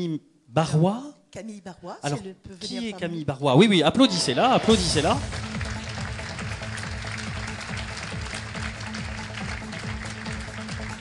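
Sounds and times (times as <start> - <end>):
music playing: 2.6 - 11.0
audience applauding: 4.6 - 11.0.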